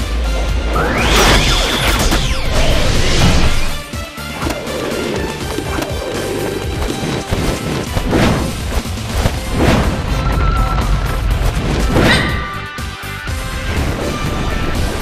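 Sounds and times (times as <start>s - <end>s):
upbeat cartoon action music: 0.0s - 15.0s.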